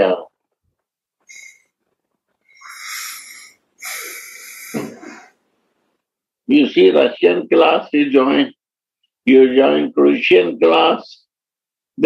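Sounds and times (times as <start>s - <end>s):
breathy hisses with whistle: 1.3s - 1.8s, 2.5s - 5.4s.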